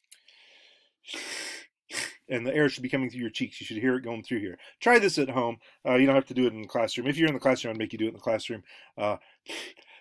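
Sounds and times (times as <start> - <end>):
man making breathy hiss: 1.0 - 2.3, 9.4 - 10.0.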